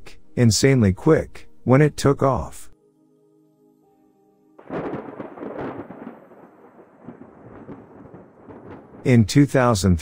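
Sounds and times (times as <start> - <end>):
thunderclap rumbling: 4.6 - 10.0.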